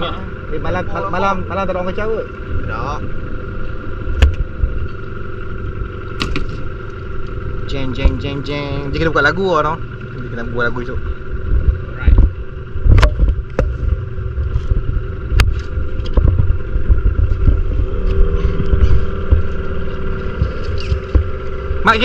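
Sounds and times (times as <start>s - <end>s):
outboard motor running: 0.0s - 22.0s
sharp knocks: 6.2s - 6.6s
wind buffeting microphone: 11.2s - 21.8s.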